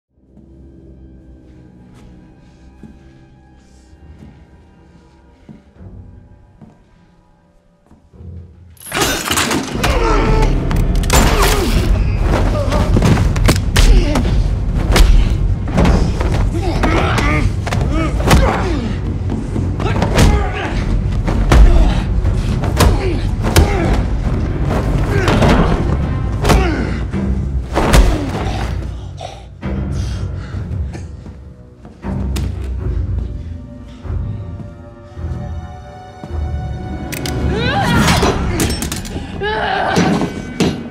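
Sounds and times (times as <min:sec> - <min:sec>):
tense music score: 0:00.1 - 0:40.9.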